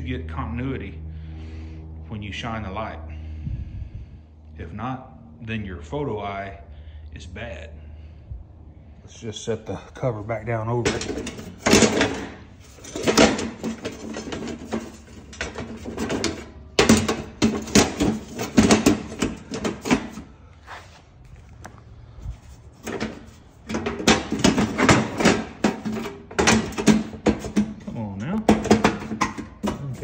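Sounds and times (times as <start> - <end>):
man talking: 9.1 - 11.0, 27.9 - 28.5, 29.7 - 30.0.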